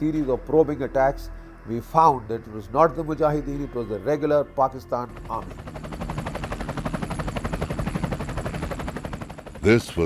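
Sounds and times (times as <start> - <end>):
helicopter rotor blades chopping: 4.9 - 10.0.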